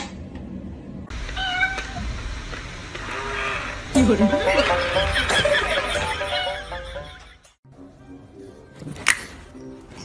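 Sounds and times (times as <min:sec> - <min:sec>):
cat meowing: 0:01.4 - 0:02.0.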